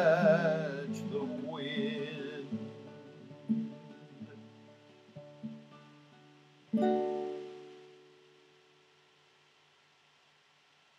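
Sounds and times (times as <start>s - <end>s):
guitar chord ringing: 0.0s - 8.2s
faint hiss: 0.0s - 10.9s.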